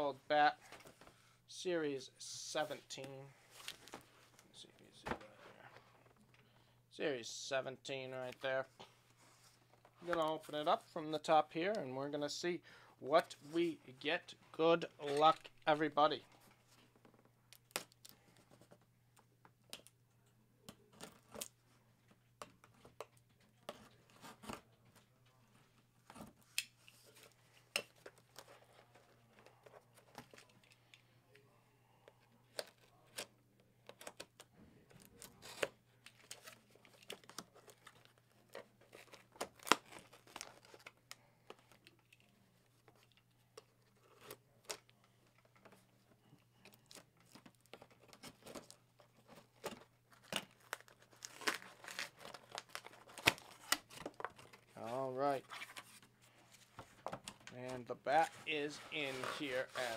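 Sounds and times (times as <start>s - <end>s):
packing tape tearing: 50.1s - 54.6s, 58.8s - 59.9s.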